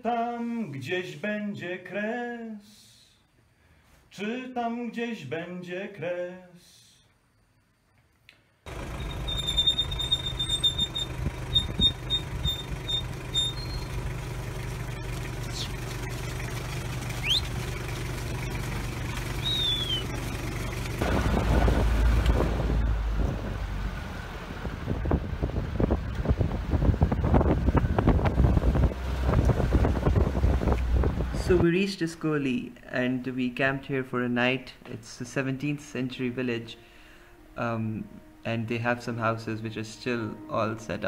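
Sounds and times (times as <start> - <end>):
vehicle engine running: 8.7 - 31.6
high short whistles: 9.0 - 14.0, 17.2 - 17.6, 19.4 - 20.2.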